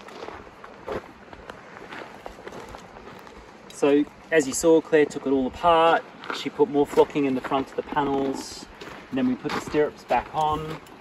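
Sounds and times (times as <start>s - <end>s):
footsteps on gravel: 0.0s - 10.9s.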